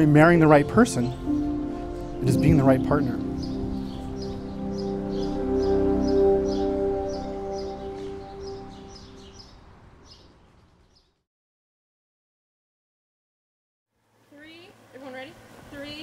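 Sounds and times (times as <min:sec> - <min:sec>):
background music sustained chord: 0:00.0 - 0:09.7
small bird chirping: 0:03.2 - 0:11.2.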